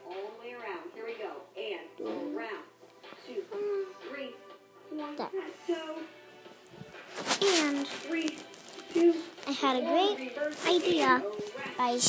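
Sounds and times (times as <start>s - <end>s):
television playing music: 0.0s - 12.0s.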